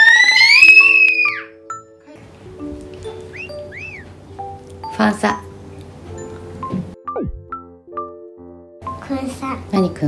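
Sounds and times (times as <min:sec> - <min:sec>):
whistle-like sound effect glides: 0:00.0 - 0:01.4
child shrieking: 0:00.0 - 0:01.6
light background music: 0:00.0 - 0:10.0.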